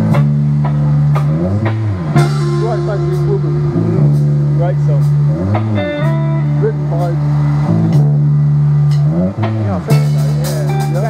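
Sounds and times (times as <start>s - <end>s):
bass guitar: 0.0s - 11.0s
drums: 0.0s - 11.0s
electric lead guitar bending notes: 0.0s - 11.0s.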